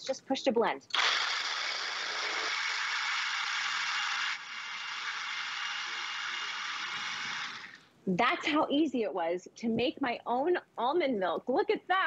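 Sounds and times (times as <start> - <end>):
blender whirring: 0.9 - 7.8.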